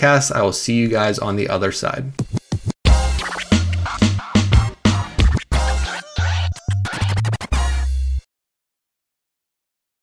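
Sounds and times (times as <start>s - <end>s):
turntable scratching: 2.2s - 8.2s
electronic hip-hop jingle: 2.2s - 8.3s.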